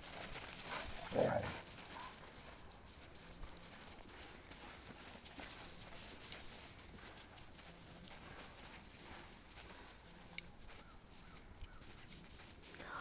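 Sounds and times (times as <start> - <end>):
dog paws crunching in snow: 0.0 - 13.0.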